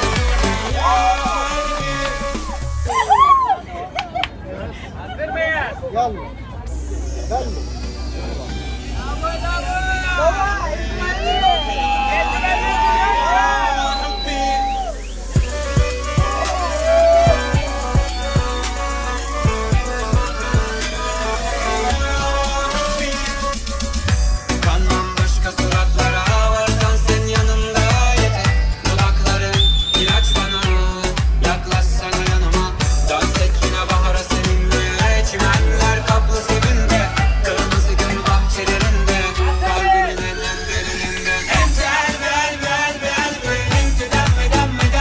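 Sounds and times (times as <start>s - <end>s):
pop dance music with heavy beat: 0.0s - 3.4s, 6.7s - 45.0s
voices calling out and singing: 0.0s - 4.4s, 6.3s - 45.0s
high whistle-like tone sliding down: 9.0s - 15.7s.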